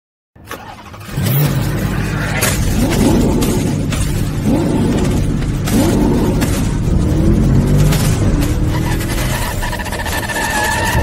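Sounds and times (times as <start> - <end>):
car engine revving: 0.5 - 11.0.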